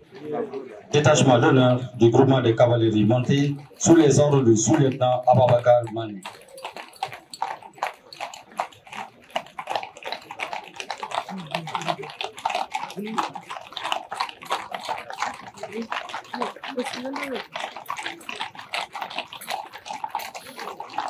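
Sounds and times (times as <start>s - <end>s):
horse hooves clopping on pavement: 0.0s - 21.0s.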